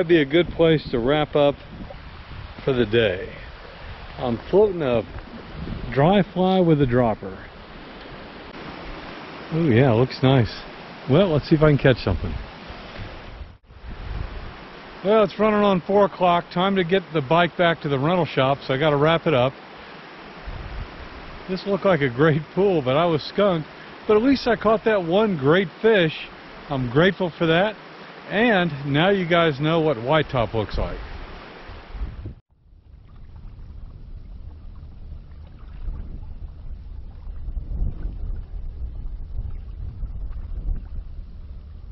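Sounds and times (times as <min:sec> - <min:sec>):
wind buffeting microphone: 0:00.0 - 0:15.0, 0:20.4 - 0:21.5, 0:30.3 - 0:41.9
creek rushing: 0:01.0 - 0:32.1
water lapping: 0:01.6 - 0:30.2, 0:32.9 - 0:41.2
stream flowing over rocks: 0:03.6 - 0:11.8, 0:14.4 - 0:31.9.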